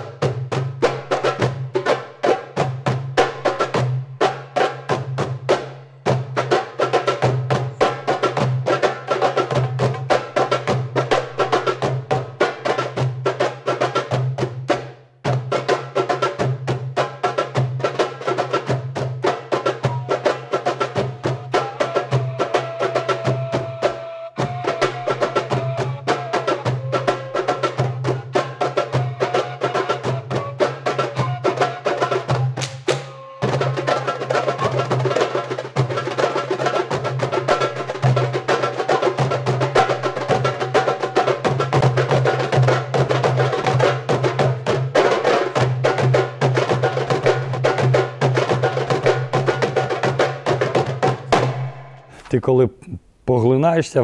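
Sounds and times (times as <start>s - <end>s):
goblet drums played fast: 0.0s - 52.6s.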